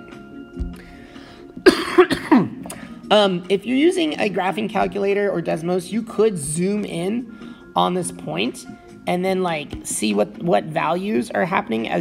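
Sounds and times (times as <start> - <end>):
man coughing: 1.6 - 2.8.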